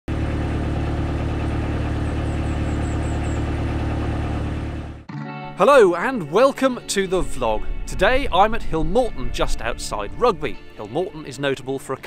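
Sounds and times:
diesel engine running: 0:00.1 - 0:05.1
bird chirping: 0:02.0 - 0:03.5.

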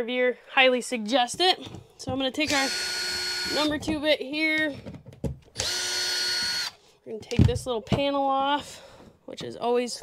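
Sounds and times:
screw gun motor whining: 0:02.4 - 0:03.8, 0:05.6 - 0:06.8
screw bit clicks: 0:05.6 - 0:06.8.

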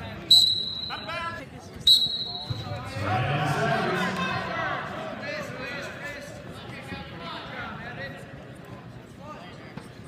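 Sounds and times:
referee's whistle blasts: 0:00.2 - 0:01.2, 0:01.8 - 0:02.8.

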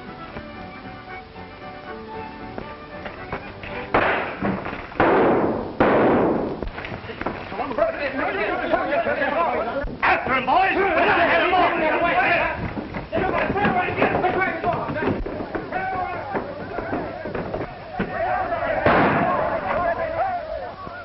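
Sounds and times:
gunshots with ringing tail: 0:05.0 - 0:06.5, 0:18.8 - 0:19.6
men shouting: 0:07.6 - 0:21.0.

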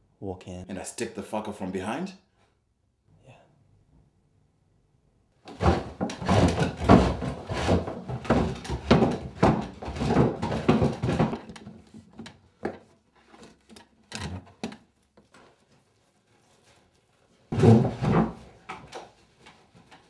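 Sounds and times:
wooden chair knocking on wooden floor: 0:05.5 - 0:12.8.

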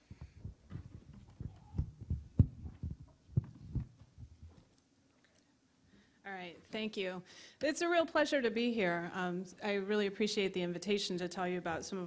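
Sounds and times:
microphone handling thumps: 0:00.0 - 0:04.6.

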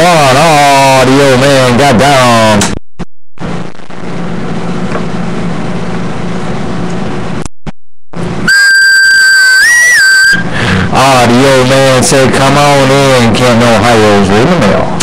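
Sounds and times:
faint hum: 0:03.4 - 0:07.5, 0:08.2 - 0:15.0
whistle-like high tone: 0:08.5 - 0:10.5.

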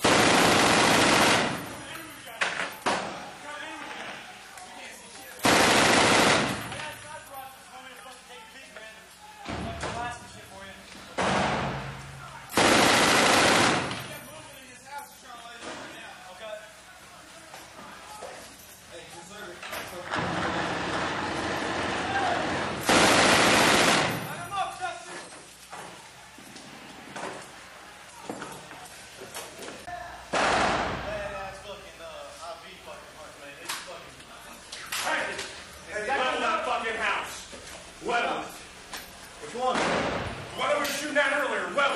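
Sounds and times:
machine gun firing bursts indoors: 0:00.0 - 0:01.9, 0:05.4 - 0:06.8, 0:12.5 - 0:14.2, 0:20.8 - 0:24.4.

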